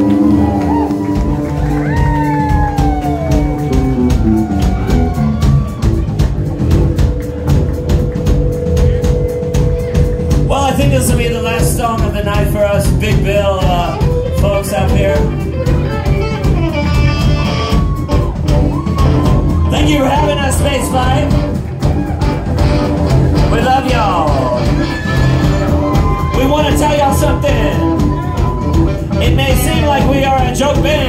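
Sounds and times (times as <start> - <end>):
live rock band playing: 0.0 - 31.0.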